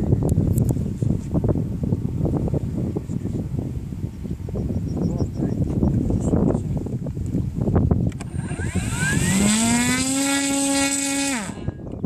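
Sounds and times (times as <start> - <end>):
electric motor and propeller whine: 8.0 - 12.0.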